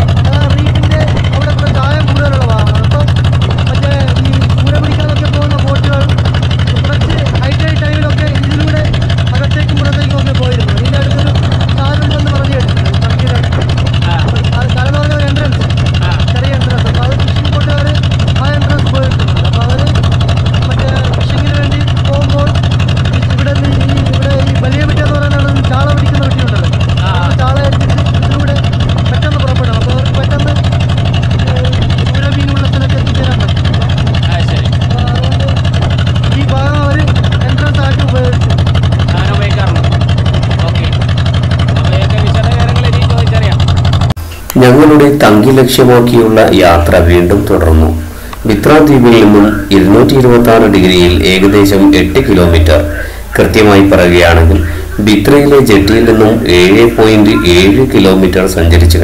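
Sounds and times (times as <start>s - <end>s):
people talking: 0.0s - 43.6s, 44.2s - 59.0s
motorboat engine running: 0.0s - 59.0s.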